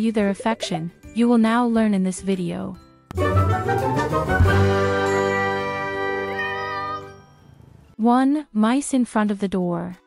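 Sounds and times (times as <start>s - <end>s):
bell-like jingle chord: 4.8s - 7.9s.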